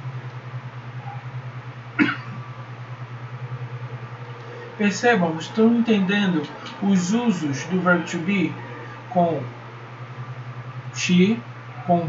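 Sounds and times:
steady low hum: 0.0s - 12.0s
man coughing: 2.0s - 2.4s.

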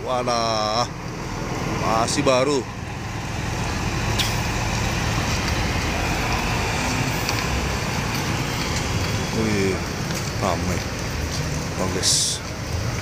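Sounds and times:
diesel bus engine running: 0.0s - 13.0s.

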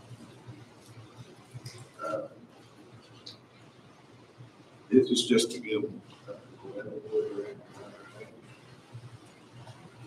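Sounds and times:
man speaking faintly: 1.6s - 2.5s, 4.9s - 8.5s.

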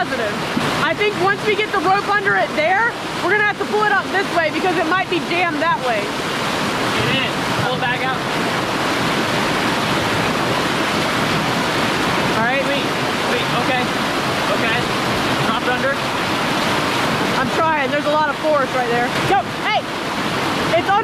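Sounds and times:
whitewater rapid rushing: 0.0s - 21.0s.

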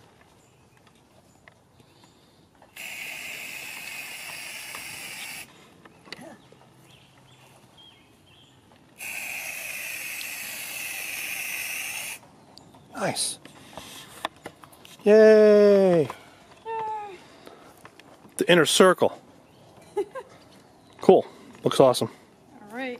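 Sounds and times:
aerosol can spraying: 2.8s - 5.5s, 9.0s - 12.2s.

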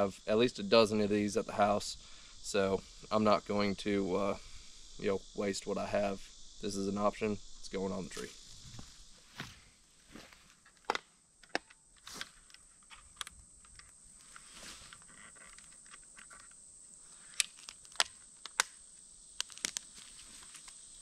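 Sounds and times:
plastic clicks and snaps: 17.4s - 18.8s, 19.4s - 19.9s.

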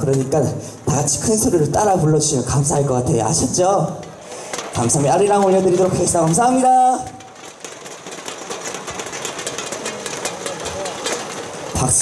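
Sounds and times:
audience applause: 4.2s - 12.0s.

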